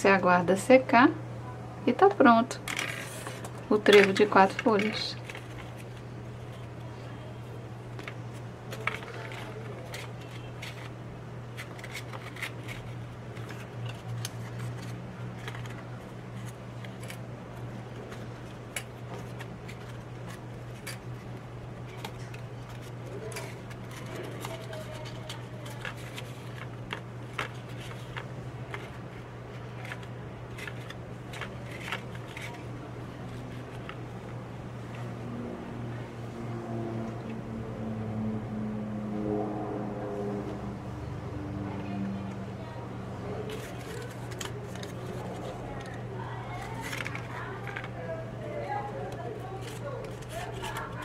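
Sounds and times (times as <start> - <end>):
steady low hum: 0.0 - 51.0
stiff paper rustling: 2.6 - 34.3, 43.3 - 51.0.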